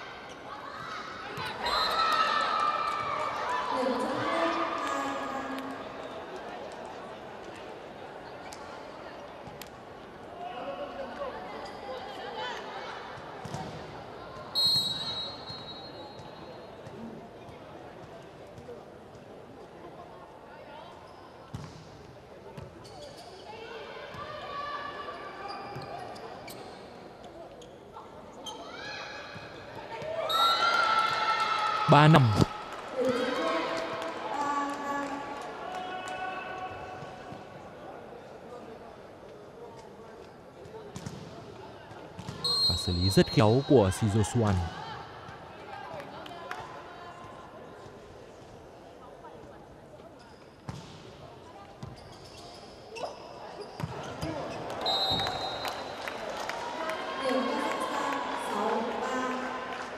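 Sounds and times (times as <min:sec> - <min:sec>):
referee's whistle: 0:01.6 - 0:02.0, 0:14.6 - 0:16.1, 0:42.4 - 0:44.6, 0:54.8 - 0:55.7.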